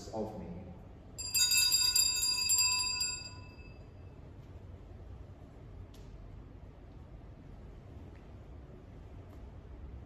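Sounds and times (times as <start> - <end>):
altar bells ringing: 1.2 - 4.2.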